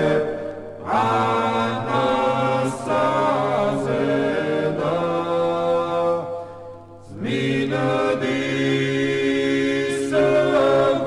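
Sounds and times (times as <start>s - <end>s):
men singing chant a cappella: 0.0s - 6.3s, 7.1s - 11.0s.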